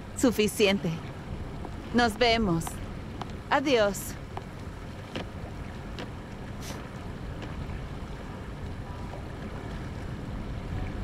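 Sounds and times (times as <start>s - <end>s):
boat engine rumble: 0.0s - 11.0s
wind: 0.0s - 11.0s.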